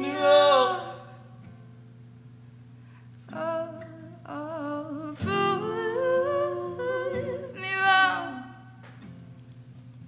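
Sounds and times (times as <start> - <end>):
woman singing long notes: 0.0 - 1.1, 3.3 - 8.6.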